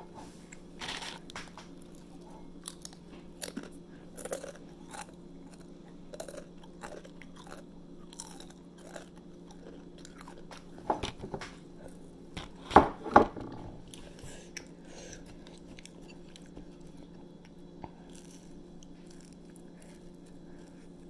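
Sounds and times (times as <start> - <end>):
faint hum: 0.0 - 21.0
chewing crunchy chips: 0.5 - 12.7, 13.8 - 21.0.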